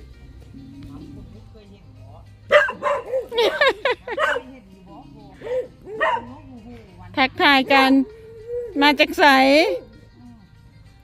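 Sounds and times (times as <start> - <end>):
dog barking: 2.5 - 4.6, 5.4 - 6.7.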